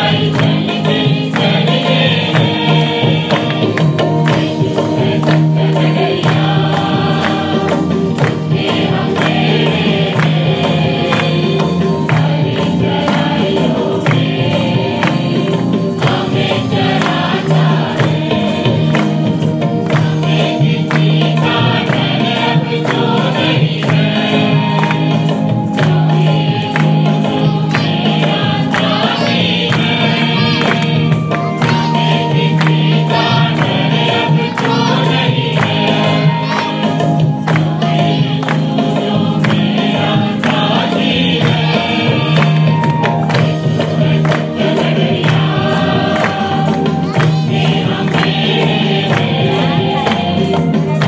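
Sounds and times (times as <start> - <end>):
instrumental accompaniment: 0.0 - 51.0
percussion strokes: 0.0 - 51.0
voices singing worship song: 0.0 - 51.0.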